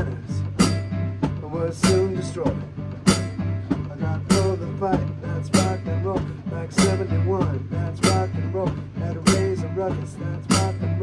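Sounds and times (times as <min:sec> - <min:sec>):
drums and bass: 0:00.0 - 0:11.0
rock and roll electric keyboard: 0:00.0 - 0:11.0.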